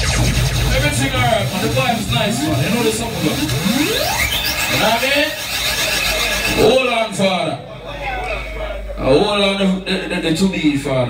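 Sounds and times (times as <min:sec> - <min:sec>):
music: 0:00.0 - 0:06.4
rising pitched sweep: 0:00.0 - 0:06.9.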